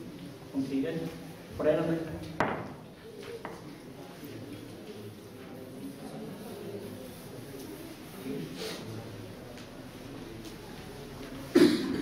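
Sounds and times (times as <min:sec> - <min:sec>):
loud cough: 0:11.5 - 0:12.0.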